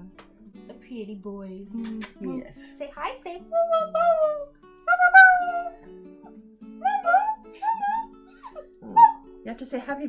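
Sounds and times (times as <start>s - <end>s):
acoustic guitar music: 0.0s - 10.0s
small dog howling: 3.6s - 6.0s, 6.8s - 9.2s.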